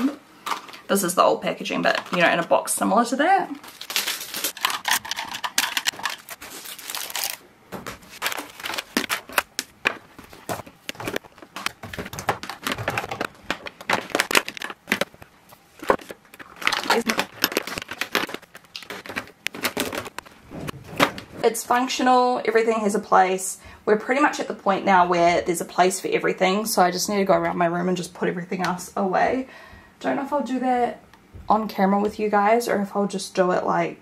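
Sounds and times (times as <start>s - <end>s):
packaging crinkling: 3.6s - 21.4s
hair clips clicking and clattering: 4.0s - 7.4s.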